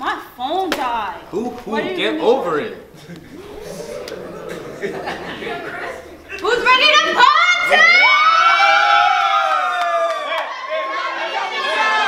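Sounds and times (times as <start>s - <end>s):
young people screaming and whooping: 3.2s - 10.7s.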